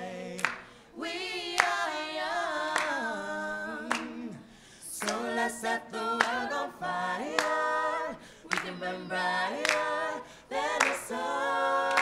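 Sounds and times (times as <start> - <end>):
group singing without instruments: 0.0 - 12.0
sharp clap keeping time: 0.4 - 0.7, 5.0 - 5.3, 6.2 - 6.5, 8.5 - 8.9, 9.5 - 11.2.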